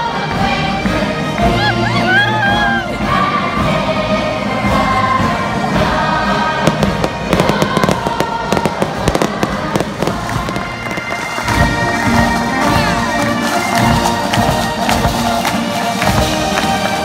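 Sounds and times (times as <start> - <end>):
crowd singing: 0.0 - 17.0
music: 0.0 - 17.0
fireworks crackling and banging: 4.6 - 17.0.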